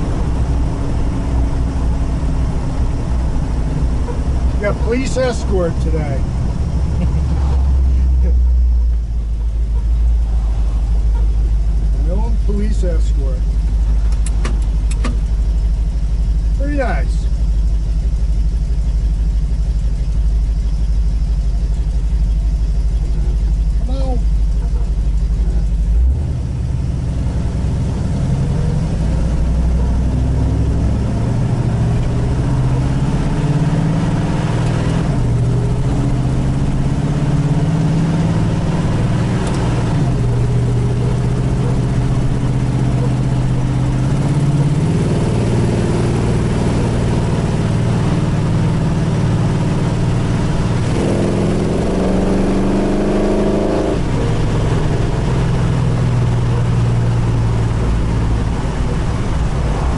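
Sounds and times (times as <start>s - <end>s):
car engine idling and driving: 0.0s - 59.9s.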